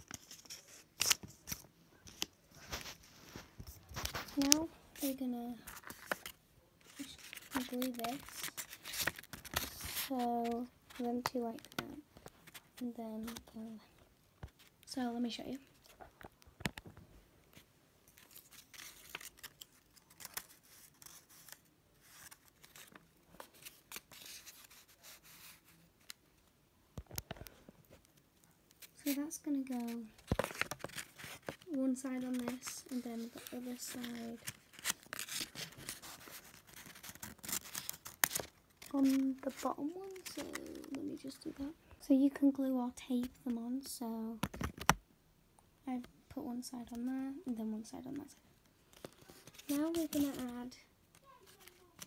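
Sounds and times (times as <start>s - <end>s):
paper rustling: 0.0s - 13.6s, 15.7s - 26.2s, 27.0s - 41.8s, 48.9s - 52.0s
scissors snipping paper: 6.9s - 11.8s, 18.2s - 25.5s, 28.8s - 41.0s, 49.0s - 50.6s, 51.2s - 52.0s.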